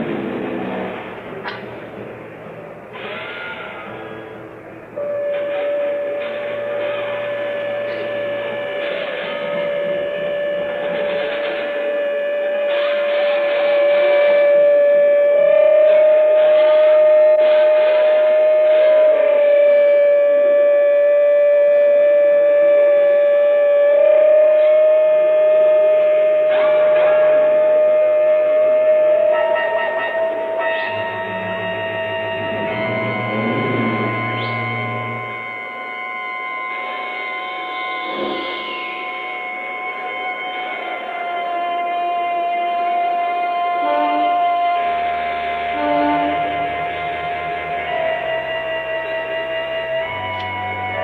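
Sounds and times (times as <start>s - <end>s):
low hum: 0.0s - 43.7s
long held note: 0.0s - 51.0s
rock band drone: 0.0s - 51.0s
psychedelic rock band playing: 26.4s - 51.0s.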